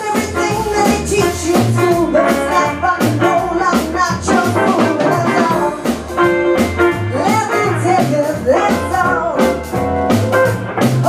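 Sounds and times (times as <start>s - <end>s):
woman singing: 0.0s - 6.0s, 6.9s - 9.8s
drums: 0.0s - 11.0s
electric guitar: 0.0s - 11.0s
piano: 0.0s - 11.0s
upright double bass: 0.0s - 11.0s.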